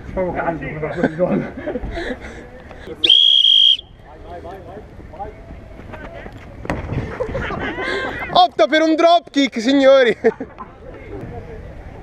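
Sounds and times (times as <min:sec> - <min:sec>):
referee's whistle blast: 0:03.0 - 0:03.9
distant shouting voices: 0:03.0 - 0:04.2.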